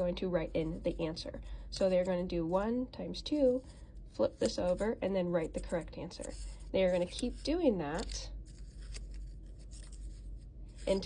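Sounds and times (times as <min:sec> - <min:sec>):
stiff paper rustling: 0:03.3 - 0:11.0.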